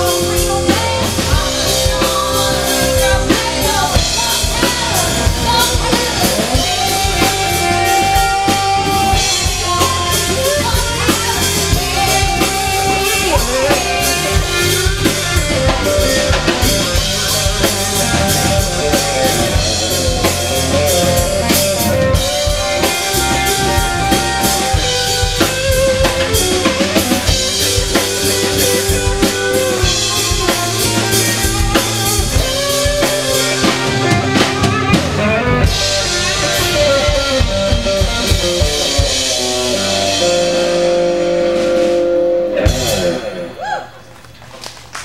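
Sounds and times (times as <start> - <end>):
drum beat: 0.0 - 40.5
bass guitar: 0.0 - 44.2
electric guitars: 0.0 - 44.6.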